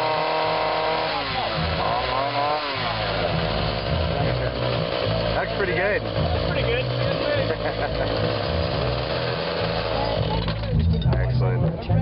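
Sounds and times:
blender whirring: 0:00.0 - 0:10.6.

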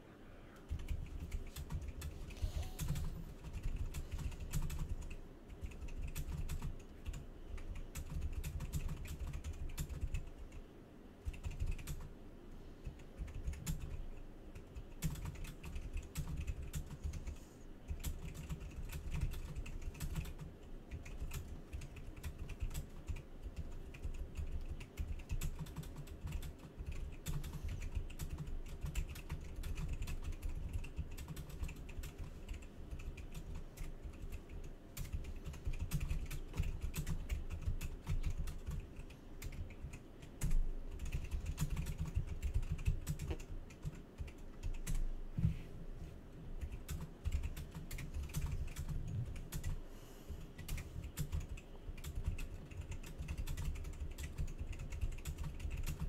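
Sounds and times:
rapid irregular clicking and tapping: 0:00.6 - 0:45.6, 0:46.5 - 0:56.0.

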